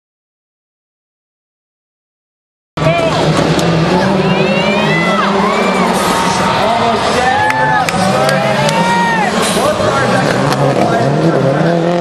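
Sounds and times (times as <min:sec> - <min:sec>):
crowd cheering: 0:02.8 - 0:12.0
rally car engine at speed: 0:02.8 - 0:12.0
high whoops: 0:07.2 - 0:09.4.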